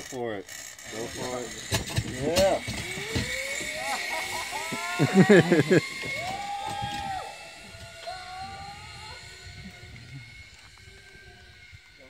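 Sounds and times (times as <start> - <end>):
zipline trolley whining on cable: 0.0 - 12.0.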